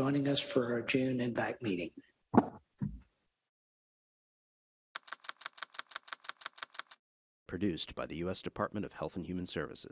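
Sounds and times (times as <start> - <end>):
typing sound effect clicks: 5.0 - 7.0.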